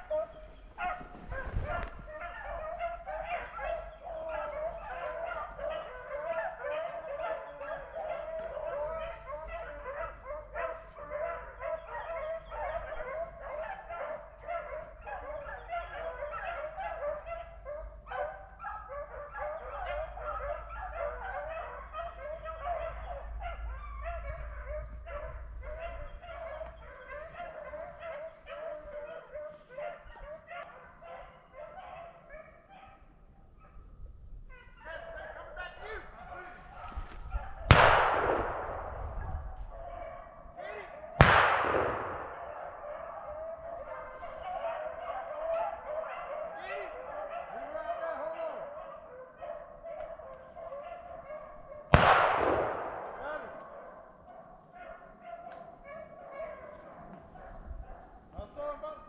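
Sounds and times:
hounds baying: 0.0s - 33.9s, 34.5s - 59.0s.

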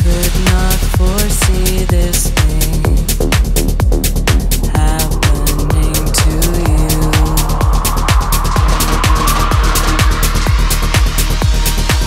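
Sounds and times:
kick drum: 0.0s - 12.0s
ticking hi-hats: 0.0s - 12.0s
rising noise sweep: 3.9s - 12.0s.

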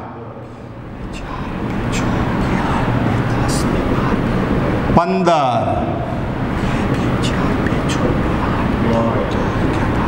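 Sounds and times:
low rumbling hum: 0.0s - 10.0s.

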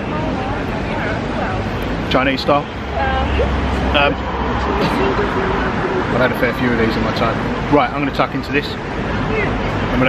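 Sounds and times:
passing vehicle engine rumble: 0.0s - 10.0s
people chattering: 0.0s - 10.0s.

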